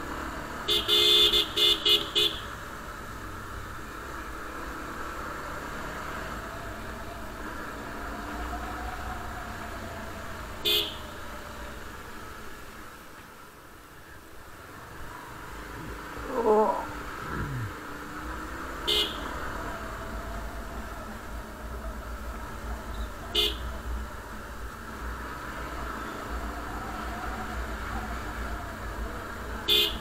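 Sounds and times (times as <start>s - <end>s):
motorcycle horn toots: 0.7s - 2.5s, 10.6s - 11.0s, 18.9s - 19.3s, 23.0s - 23.6s, 29.7s - 30.0s
motorcycle engine and wind rumble: 19.6s - 29.7s.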